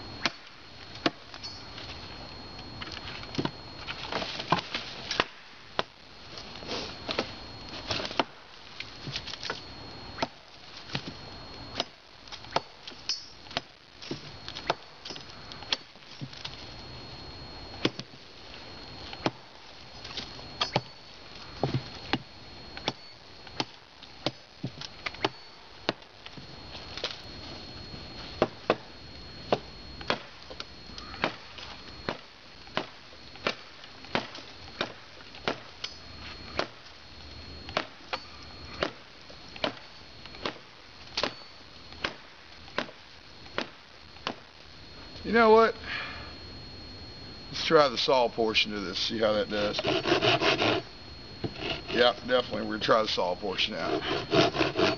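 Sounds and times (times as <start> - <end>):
machete chopping into log: 31.2 - 31.4.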